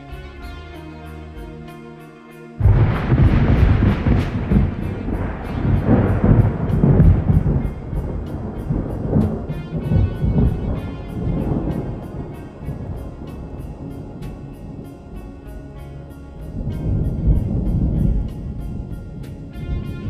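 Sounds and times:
calm instrumental music: 0:00.0 - 0:20.0
thunder rolling and rumbling: 0:02.6 - 0:20.0.

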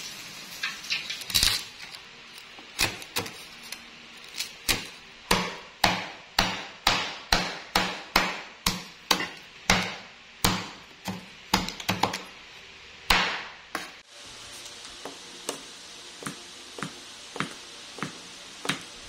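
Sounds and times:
knife chopping on wooden board: 0:04.7 - 0:12.2, 0:13.1 - 0:14.0.

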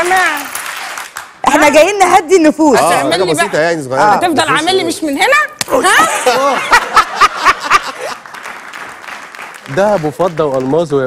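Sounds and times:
audience applause: 0:06.9 - 0:11.0.

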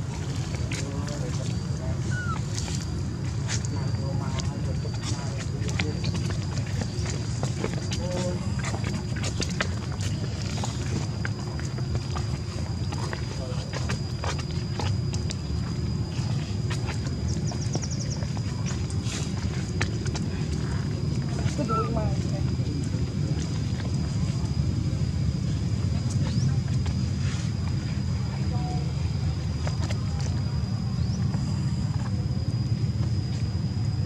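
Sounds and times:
steady low rumble: 0:00.0 - 0:34.0
faint indistinct voices: 0:00.2 - 0:34.0.

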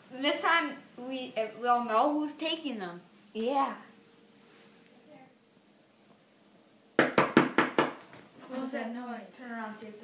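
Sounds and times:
quick sharp knocks: 0:07.0 - 0:08.1.

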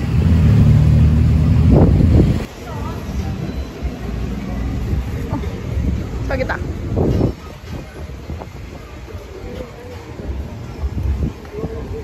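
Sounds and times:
tuk-tuk engine droning: 0:00.0 - 0:07.0.

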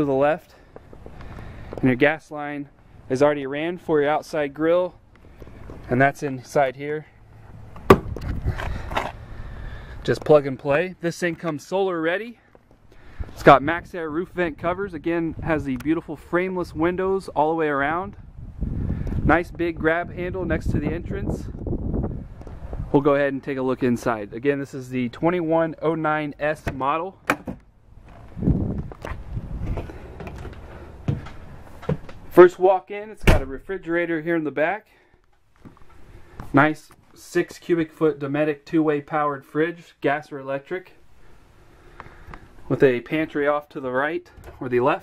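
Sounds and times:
camera handling rumble: 0:07.5 - 0:09.3, 0:27.4 - 0:32.3
heavy step: 0:28.0 - 0:32.3
footsteps on entry steps: 0:28.0 - 0:32.4.

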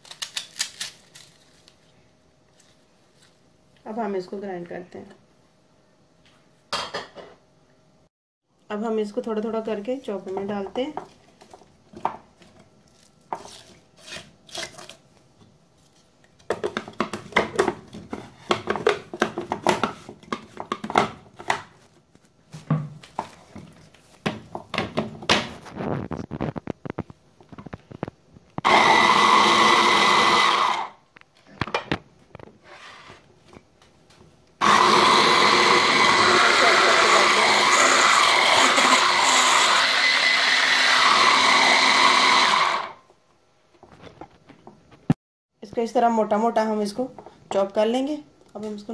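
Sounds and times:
electric chopper motor: 0:34.6 - 0:43.0.

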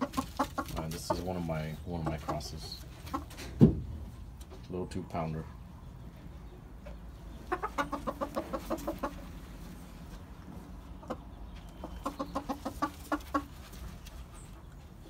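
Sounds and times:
rooster clucking: 0:00.0 - 0:03.5, 0:07.2 - 0:14.0.

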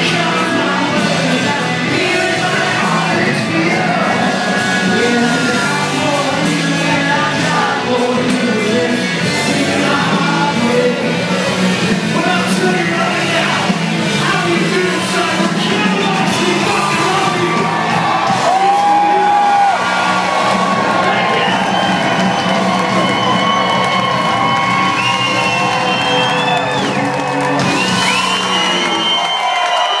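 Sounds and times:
crowd whooping and shouting: 0:00.0 - 0:30.0
live rock band playing: 0:00.0 - 0:30.0.

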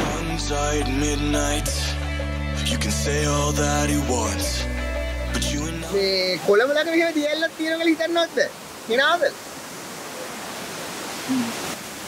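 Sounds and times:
small waterfall rushing: 0:05.9 - 0:12.0.

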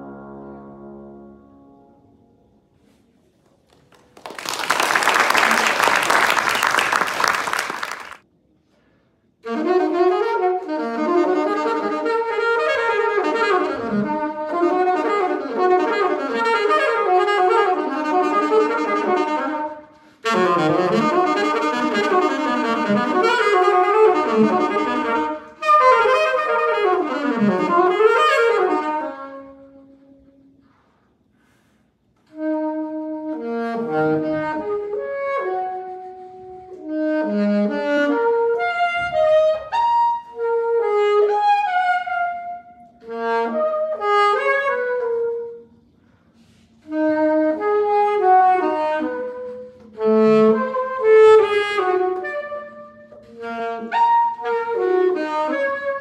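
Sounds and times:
audience applauding: 0:03.7 - 0:08.2
solo saxophone melody: 0:09.4 - 0:56.0.

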